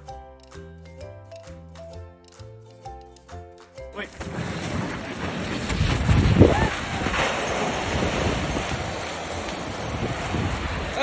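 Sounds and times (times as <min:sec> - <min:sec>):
snow tube sliding over snow: 0:04.2 - 0:11.0
wind buffeting microphone: 0:04.2 - 0:11.0.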